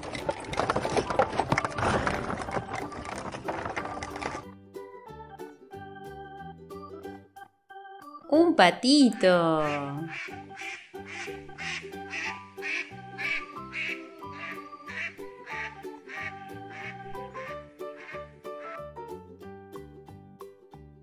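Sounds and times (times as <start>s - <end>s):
light background music: 0.0s - 21.0s
duck quacking: 9.6s - 18.9s.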